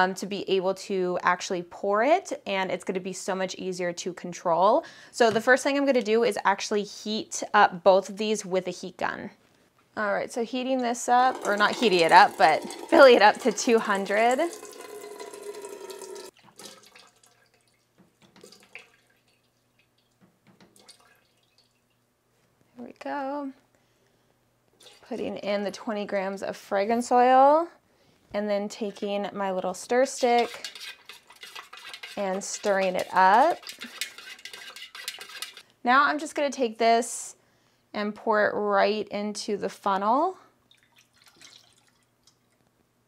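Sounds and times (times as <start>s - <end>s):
wax pouring into metal pitcher: 11.2s - 20.1s, 30.3s - 35.6s
faint drips and clinks: 12.9s - 22.1s, 40.7s - 42.6s.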